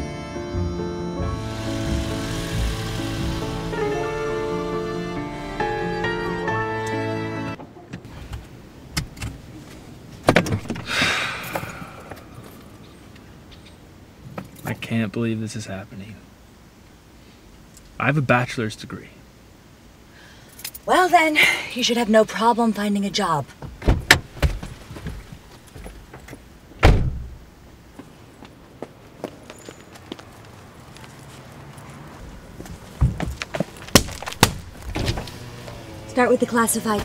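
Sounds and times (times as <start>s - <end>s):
car door shutting with thud: 10.2s - 11.6s, 23.6s - 25.2s, 26.8s - 27.4s, 34.0s - 35.4s.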